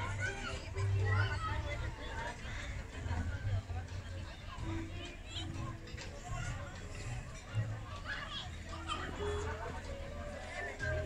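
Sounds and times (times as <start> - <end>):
children's voices: 0.0 - 2.6
many people talking: 0.0 - 11.0.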